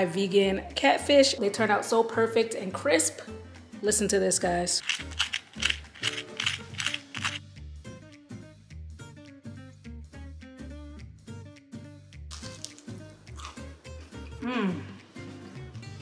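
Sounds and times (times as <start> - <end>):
background music with steady beat: 0.0 - 16.0
crispy crust crunching under a fork: 4.8 - 7.4, 12.3 - 13.7.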